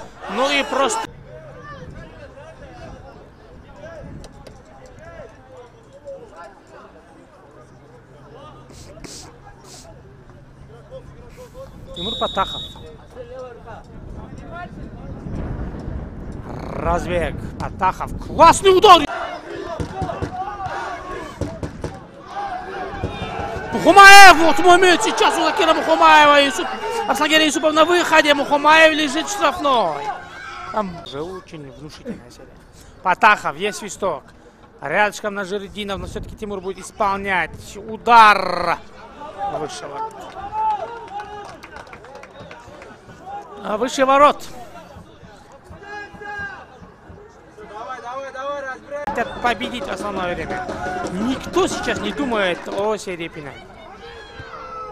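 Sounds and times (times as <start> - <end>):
men calling and shouting: 0.0 - 15.2, 16.4 - 54.9
outdoor background noise: 0.0 - 54.9
man commentating: 23.8 - 30.0.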